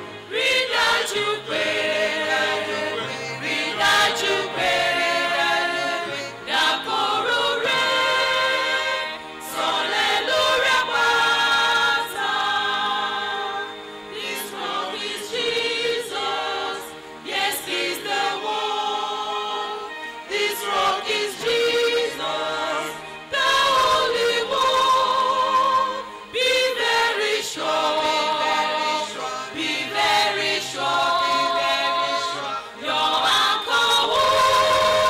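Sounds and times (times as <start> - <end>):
choir singing in harmony: 0.0 - 35.0.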